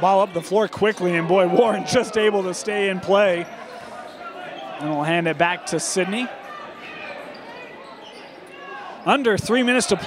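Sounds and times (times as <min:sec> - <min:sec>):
crowd murmur: 0:01.2 - 0:09.1.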